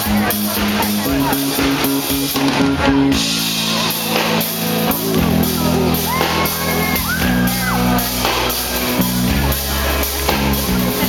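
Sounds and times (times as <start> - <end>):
drum kit with cymbals: 0.0 - 11.0
live pop-rock band: 0.0 - 11.0.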